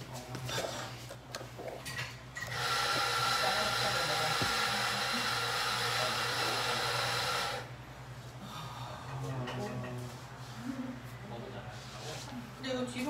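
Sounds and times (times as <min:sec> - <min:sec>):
small electric motor whining: 0:02.4 - 0:07.7.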